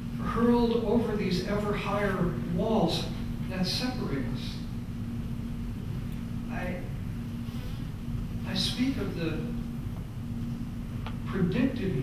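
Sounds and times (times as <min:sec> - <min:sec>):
low electrical buzz: 0:00.0 - 0:12.0.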